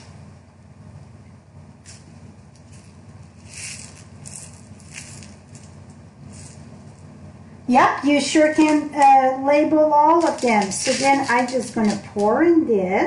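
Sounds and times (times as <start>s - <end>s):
steady low hum: 0.0s - 13.0s
plastic container rattling: 10.2s - 12.3s.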